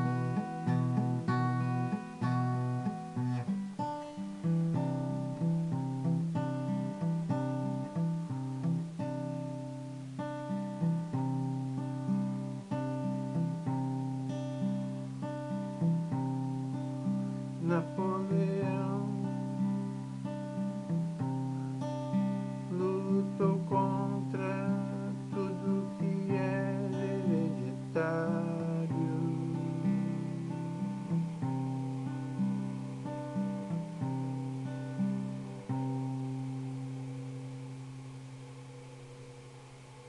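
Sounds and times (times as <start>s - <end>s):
acoustic guitar playing: 0.0s - 40.0s.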